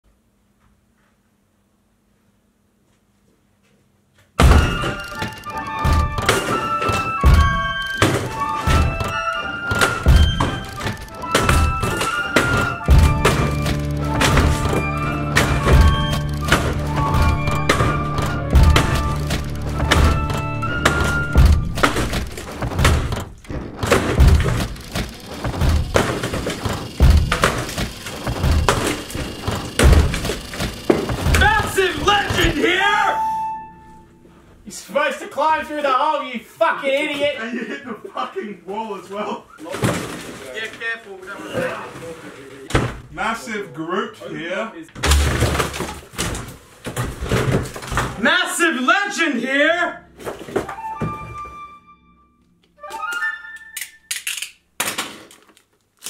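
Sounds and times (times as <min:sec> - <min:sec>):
background music melody: 0:04.4 - 0:23.4, 0:31.4 - 0:34.4, 0:50.5 - 0:54.2
axe chopping wooden door: 0:04.4 - 0:32.6, 0:45.0 - 0:48.2
bass line: 0:12.8 - 0:24.8.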